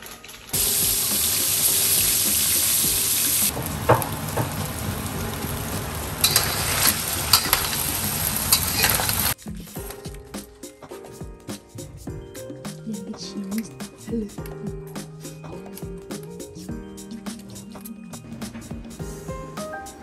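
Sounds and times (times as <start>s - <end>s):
loud sizzling in a wok: 0.6s - 9.4s.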